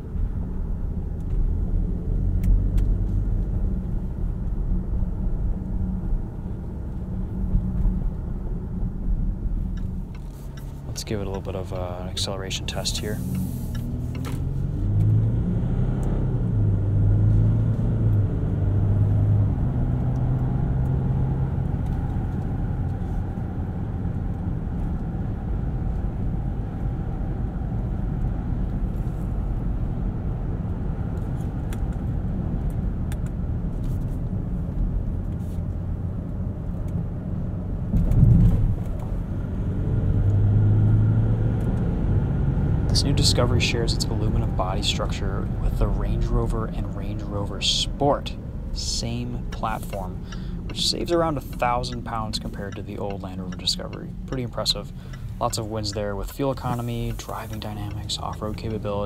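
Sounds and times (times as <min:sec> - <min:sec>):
diesel engine accelerating: 0:00.0 - 0:59.0
road and tyre rumble: 0:00.0 - 0:59.0.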